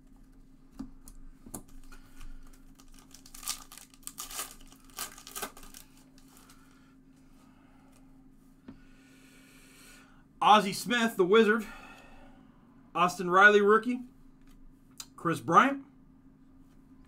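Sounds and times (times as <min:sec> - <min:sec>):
foil wrapper tearing: 0:01.8 - 0:06.6.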